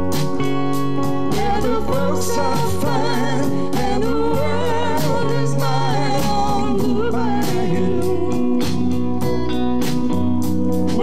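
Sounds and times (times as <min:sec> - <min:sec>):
keyboard: 0:00.0 - 0:11.0
sustained bass notes: 0:00.0 - 0:11.0.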